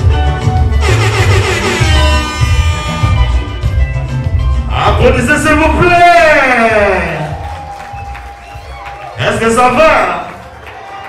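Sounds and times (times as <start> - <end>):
dance music over sound system: 0.0 - 10.6.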